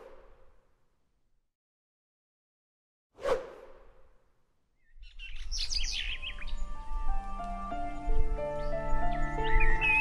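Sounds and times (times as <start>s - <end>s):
birds chirping: 4.8s - 10.0s
soft sustained music notes: 5.9s - 10.0s.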